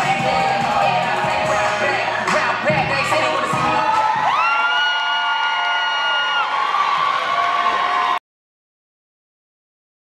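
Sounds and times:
music: 0.0s - 5.0s
audience cheering: 3.6s - 8.2s
high long whoop: 3.8s - 8.2s.

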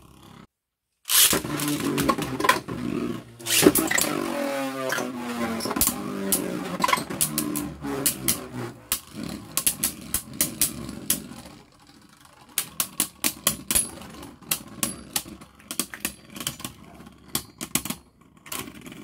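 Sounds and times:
low whir of spinning tops: 1.1s - 19.0s.

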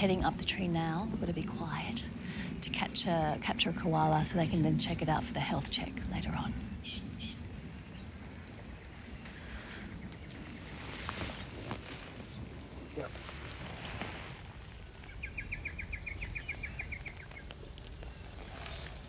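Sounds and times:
steady low rumble: 0.0s - 19.0s
branches and leaves crackling: 6.2s - 19.0s.

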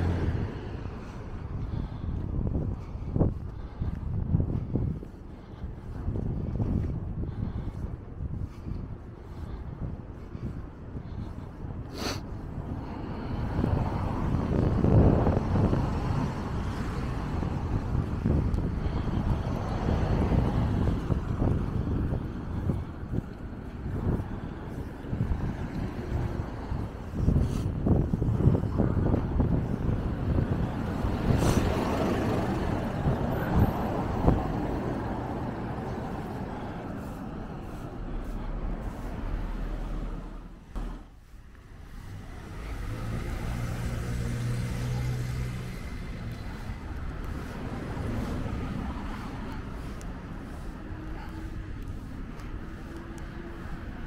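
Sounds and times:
cars passing: 0.0s - 54.0s.

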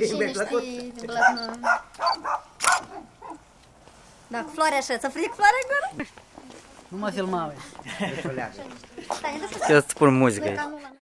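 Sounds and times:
dog barking: 1.2s - 3.5s.

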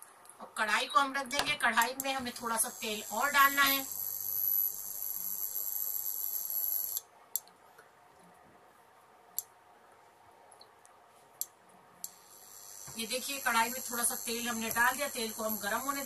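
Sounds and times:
cooktop electrical hum and whine: 0.0s - 16.0s.

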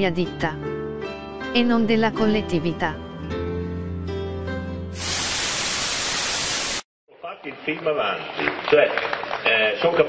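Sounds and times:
television static hiss: 5.0s - 6.8s.

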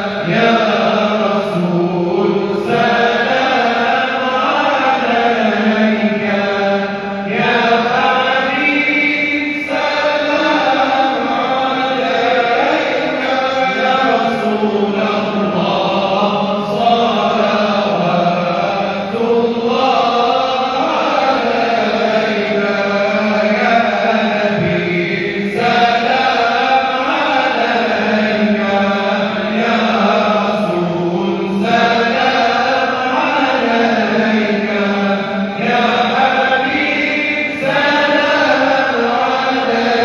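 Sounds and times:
voices chanting in unison: 0.0s - 40.0s.

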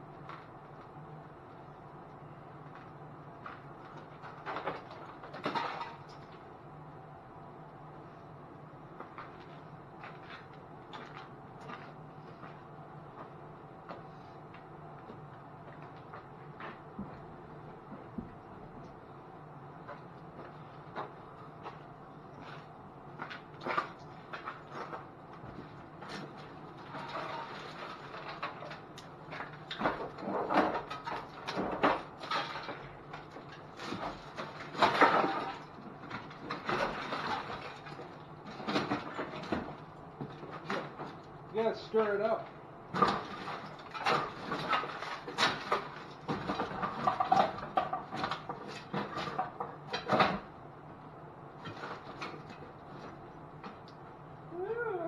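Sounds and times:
objects rummaged and clattering: 3.4s - 6.5s, 23.3s - 41.2s, 42.9s - 50.5s.

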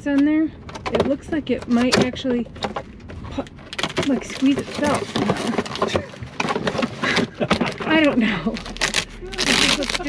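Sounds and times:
plastic bag rustling: 3.6s - 10.0s
paper rustling: 4.0s - 10.0s
person speaking: 7.6s - 10.0s.

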